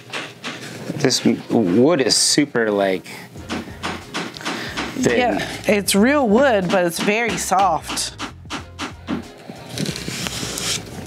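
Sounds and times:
hammer tapping nail into wood: 0:03.5 - 0:05.1, 0:06.6 - 0:09.3.

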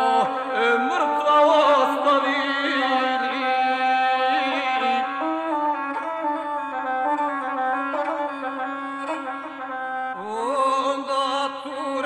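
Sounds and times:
bowed string folk instrument melody: 0:00.0 - 0:12.0.

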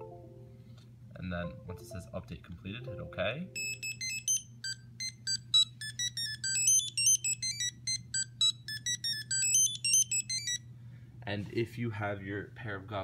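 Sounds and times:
steady low hum: 0:00.0 - 0:13.0
drone startup beeps: 0:03.0 - 0:10.6.

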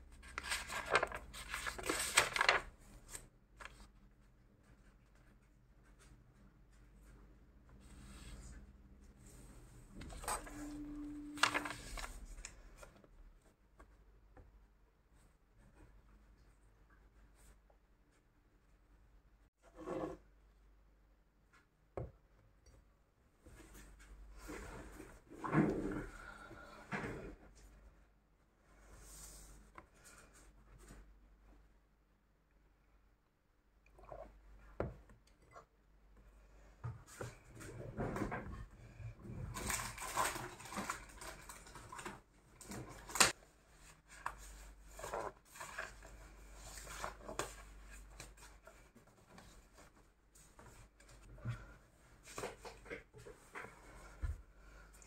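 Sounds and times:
paper rustling on a tabletop: 0:00.1 - 0:04.0, 0:09.2 - 0:13.1, 0:39.5 - 0:54.4.

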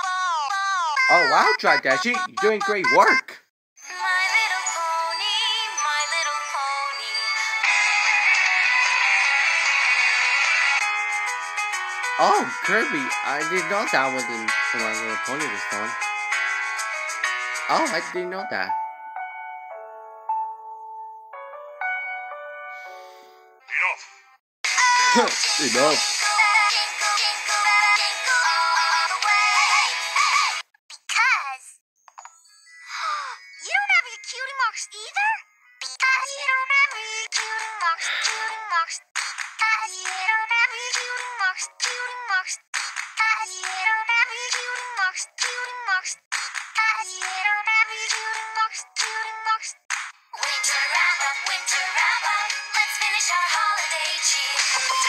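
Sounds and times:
christmas pop song with singing: 0:00.0 - 0:18.8, 0:24.7 - 0:30.6, 0:32.5 - 0:55.0
instrumental backing music: 0:10.8 - 0:23.6
person singing with vibrato: 0:24.7 - 0:30.0.

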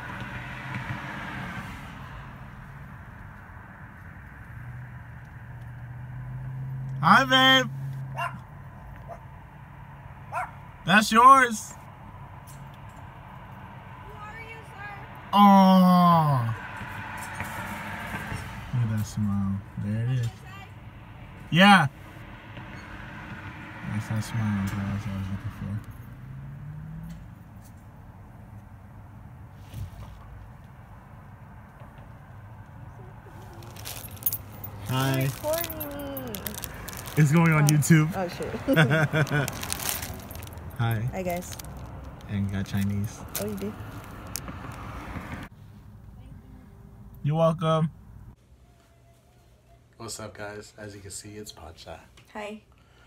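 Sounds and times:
dog yipping: 0:08.1 - 0:08.4, 0:09.0 - 0:09.3, 0:10.3 - 0:10.6
person speaking: 0:33.1 - 0:41.6, 0:42.2 - 0:44.3
plastic bag crinkling: 0:33.4 - 0:38.0, 0:38.7 - 0:40.8, 0:41.4 - 0:44.8.

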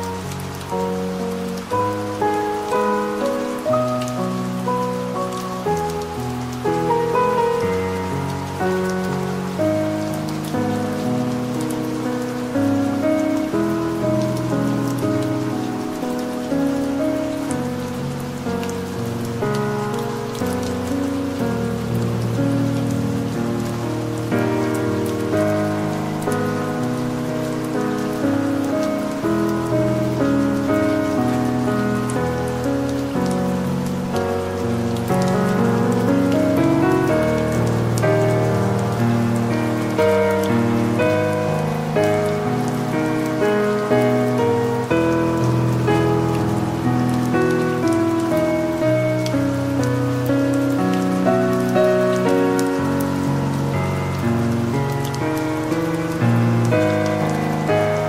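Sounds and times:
slow piano music: 0:00.0 - 0:58.0
soft rain: 0:00.0 - 0:58.0.

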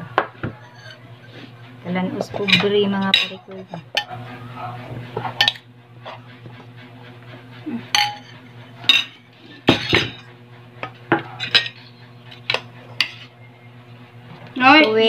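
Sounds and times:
low hum: 0:00.0 - 0:15.0
utensils clinking on plate: 0:02.1 - 0:04.2, 0:05.2 - 0:05.6, 0:07.9 - 0:10.3, 0:11.2 - 0:13.3.

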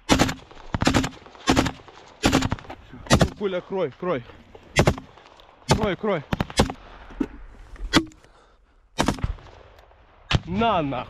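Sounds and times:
single gunshots: 0:00.0 - 0:03.5, 0:04.8 - 0:06.8, 0:09.0 - 0:10.6.

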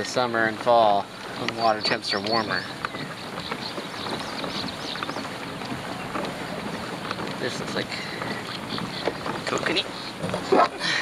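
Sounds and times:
water washing along kayak: 0:00.0 - 0:11.0.

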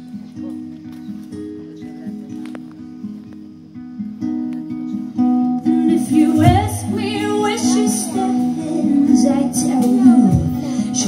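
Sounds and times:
fingerpicked acoustic guitar: 0:00.0 - 0:11.0.

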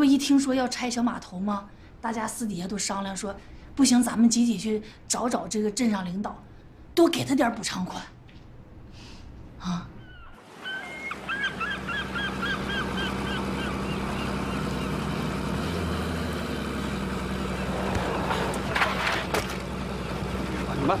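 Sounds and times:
seagull crying: 0:09.9 - 0:15.0
boat engine humming: 0:10.0 - 0:21.0.

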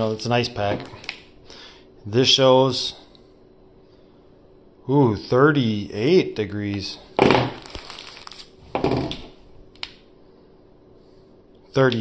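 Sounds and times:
rustling and crinkling handling noise: 0:06.7 - 0:09.4.

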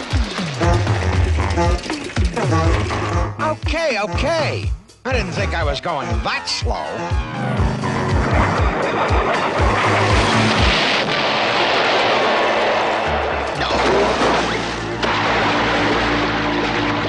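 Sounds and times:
cartoon action music with drums: 0:00.0 - 0:11.0
wooden plank breaking: 0:09.6 - 0:17.0
water splashing: 0:13.6 - 0:17.0.

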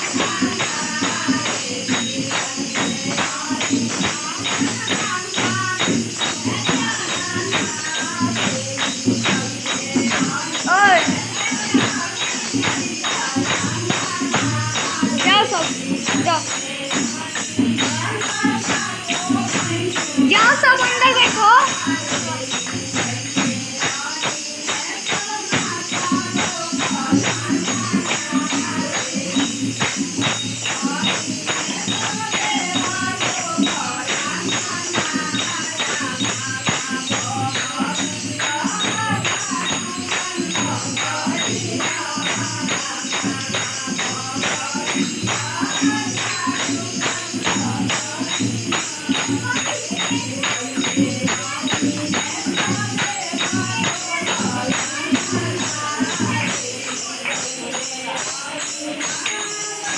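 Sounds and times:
barrel drum beat: 0:00.0 - 0:58.2
hand-clapping: 0:00.0 - 0:59.9
women singing in chorus: 0:00.0 - 0:59.9.

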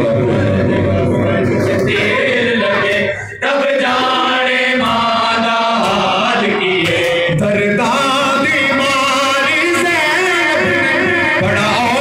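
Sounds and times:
men chanting a lament in unison: 0:00.0 - 0:12.0.

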